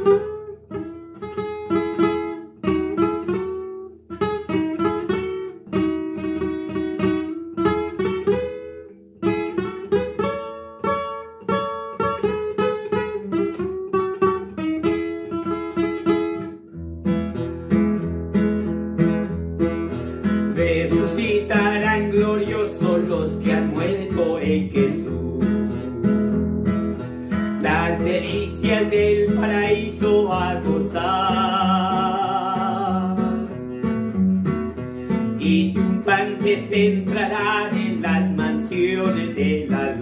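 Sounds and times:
classical guitar playing: 0:00.0 - 0:40.0
man singing: 0:20.4 - 0:26.4, 0:27.3 - 0:33.6, 0:35.4 - 0:40.0.

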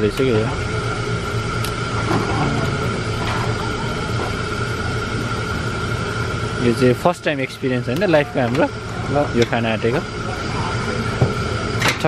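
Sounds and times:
murmured voices: 0:02.0 - 0:05.8.

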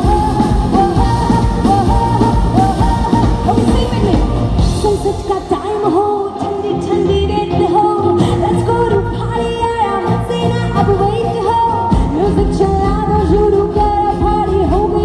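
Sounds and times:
live band with drums and bass: 0:00.0 - 0:15.0
woman singing: 0:00.0 - 0:15.0.

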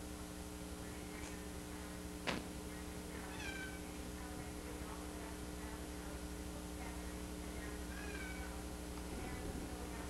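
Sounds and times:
steady low hum: 0:00.0 - 0:10.0
cat meowing: 0:03.3 - 0:03.8, 0:07.9 - 0:08.6.

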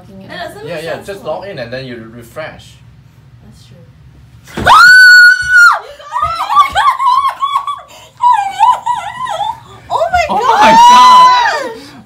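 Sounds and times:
girl screaming and sobbing: 0:04.7 - 0:09.6, 0:10.2 - 0:11.8.

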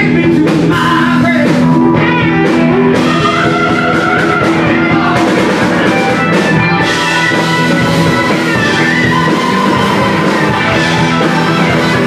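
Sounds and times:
blues-rock band playing: 0:00.0 - 0:12.0.

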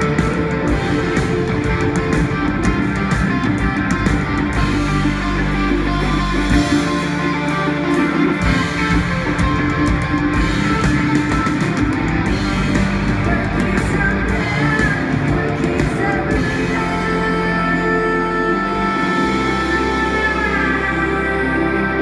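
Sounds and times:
rock band playing live: 0:00.0 - 0:22.0.

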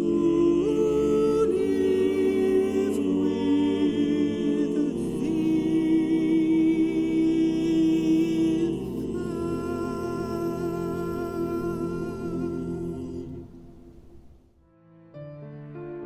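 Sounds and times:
male a cappella ensemble singing: 0:00.0 - 0:14.1.

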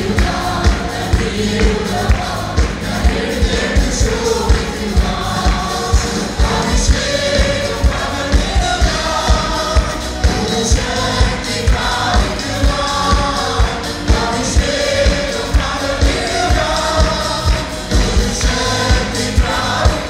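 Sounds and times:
band backing with low beat: 0:00.0 - 0:20.0
group singing worship song: 0:00.0 - 0:20.0.

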